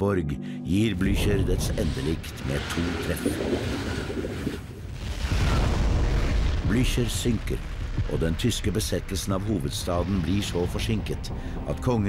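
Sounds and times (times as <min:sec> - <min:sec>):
deep rumbling explosion: 0:01.0 - 0:11.6.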